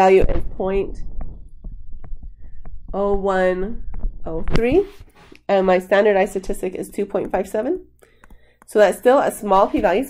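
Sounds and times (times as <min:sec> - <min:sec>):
pen tapping on tablet screen: 0:06.1 - 0:09.9.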